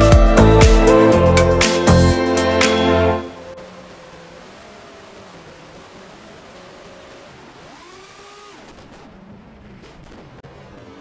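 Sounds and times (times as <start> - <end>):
quadcopter motors whining: 3.6 - 9.3.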